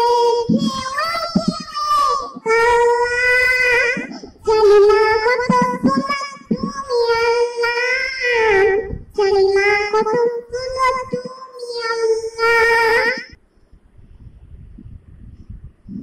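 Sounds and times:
girl singing unaccompanied: 0:00.0 - 0:13.4.

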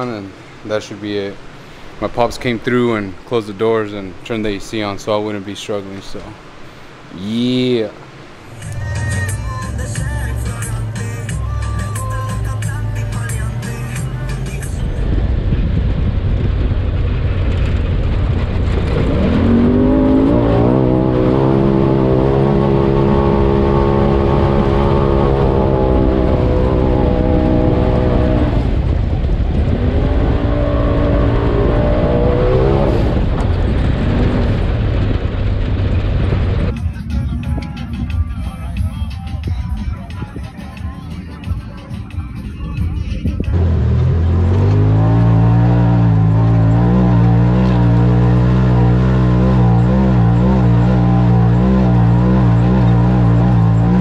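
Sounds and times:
music with a beat: 0:08.6 - 0:14.8, 0:36.7 - 0:43.6
off-road vehicle engine revving: 0:17.0 - 0:36.7, 0:43.5 - 0:54.0.

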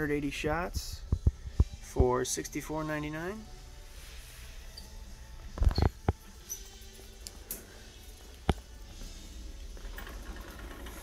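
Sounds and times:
shopping cart rumbling on concrete: 0:09.2 - 0:11.0.

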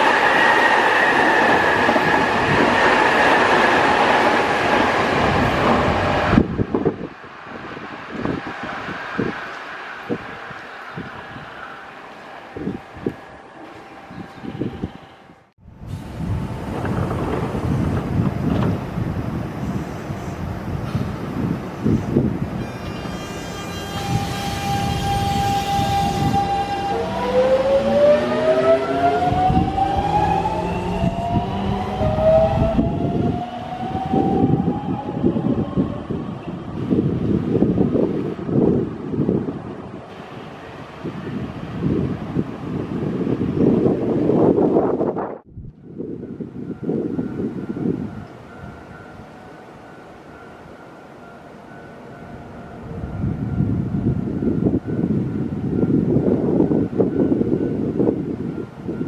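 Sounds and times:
train cars rumbling over track: 0:00.0 - 0:59.0.

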